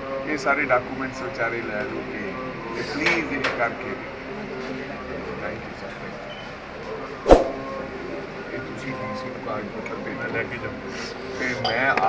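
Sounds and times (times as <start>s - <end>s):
group of people talking: 0.3s - 11.8s
sharp knock: 7.3s - 7.6s.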